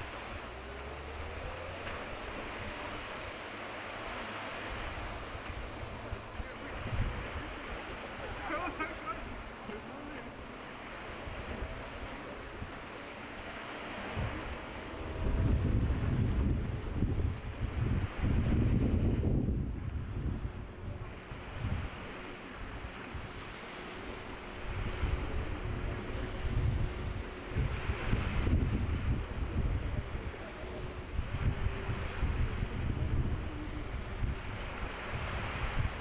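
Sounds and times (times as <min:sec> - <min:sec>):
choppy sea: 0:00.0 - 0:36.0
wind buffeting microphone: 0:00.0 - 0:36.0.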